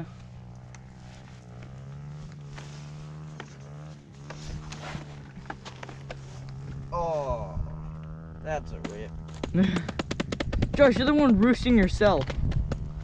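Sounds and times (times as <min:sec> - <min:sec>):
dirt bike engine idling: 0:00.0 - 0:13.0.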